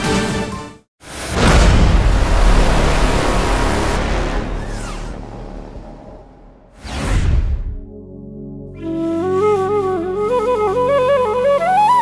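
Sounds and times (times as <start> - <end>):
explosion with bass rumble: 1.1 - 7.9.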